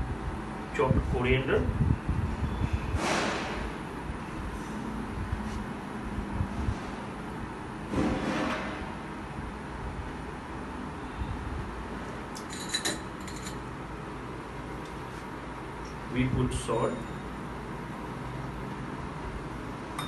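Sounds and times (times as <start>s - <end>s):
utensils and containers clinking: 12.4s - 13.7s.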